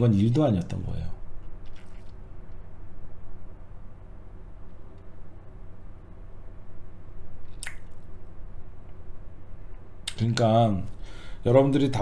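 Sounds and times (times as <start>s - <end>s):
steady low hum: 0.0s - 12.0s
mouth click: 7.5s - 8.0s.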